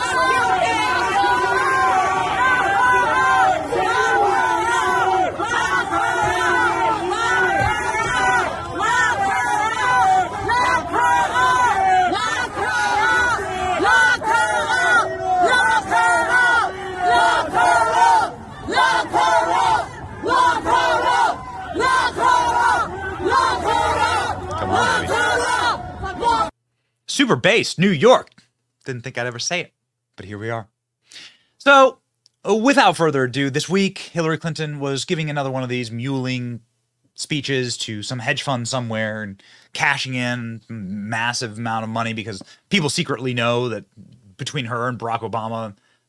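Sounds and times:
crowd shouting and yelling: 0.0 - 26.6.

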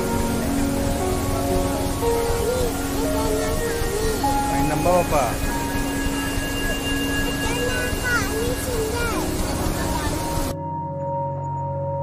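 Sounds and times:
water rushing down cascades: 0.0 - 10.6.

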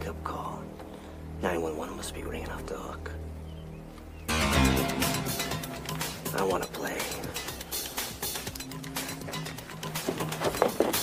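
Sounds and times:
held low notes: 0.0 - 11.0.

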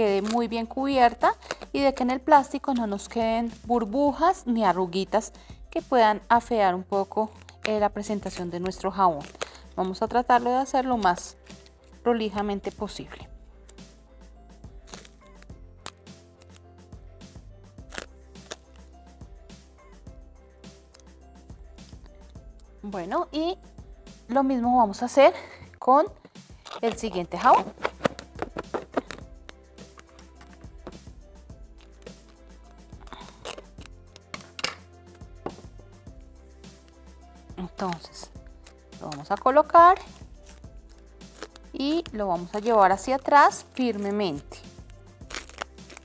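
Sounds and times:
soft background music: 0.0 - 46.0
cling film crackling: 6.9 - 14.0, 14.6 - 19.0, 26.2 - 35.8, 36.6 - 46.0
scissors snipping: 37.8 - 42.8, 43.8 - 46.0.

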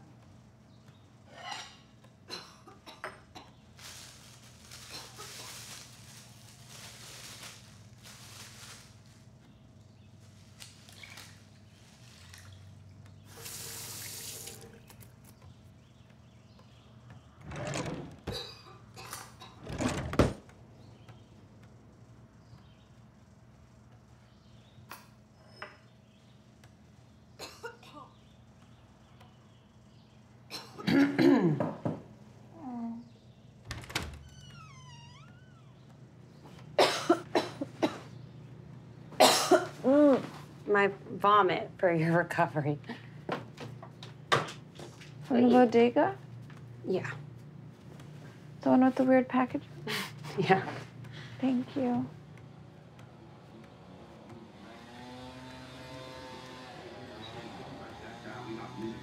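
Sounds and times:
person coughing: 30.5 - 31.7, 36.8 - 38.1, 39.2 - 39.8.

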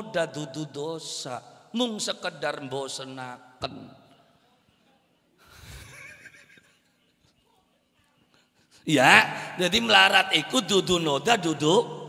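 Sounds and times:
man laughing into microphone: 5.6 - 6.8.

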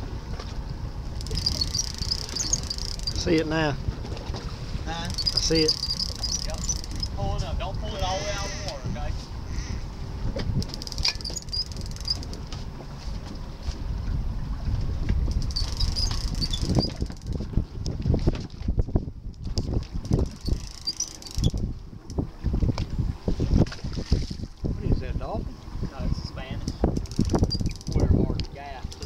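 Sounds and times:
water sloshing against boat: 0.0 - 29.0
wind buffeting microphone: 0.0 - 29.0.

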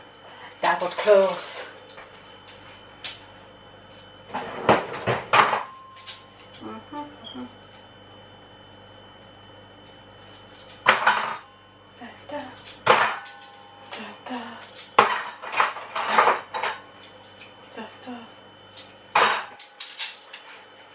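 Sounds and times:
faint steady hum: 0.0 - 20.9.

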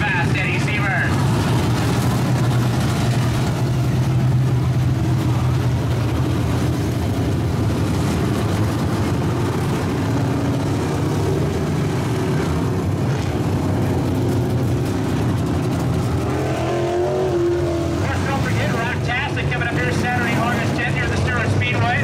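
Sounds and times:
race car engines droning past: 0.0 - 22.0.

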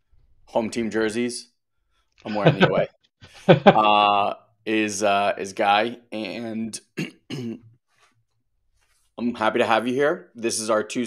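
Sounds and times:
man clearing his throat: 7.0 - 7.7.

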